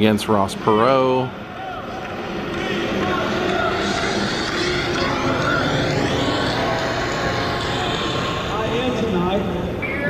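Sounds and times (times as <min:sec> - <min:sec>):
indistinct voices: 0:00.0 - 0:10.0
room noise: 0:00.0 - 0:10.0.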